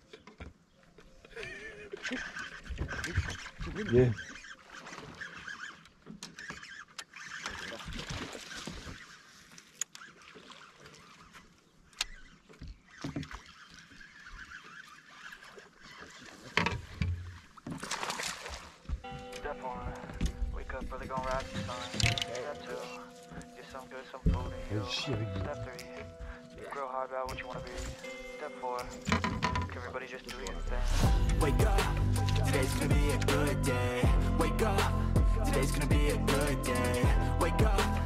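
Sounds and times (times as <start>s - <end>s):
background music: 19.1s - 38.0s.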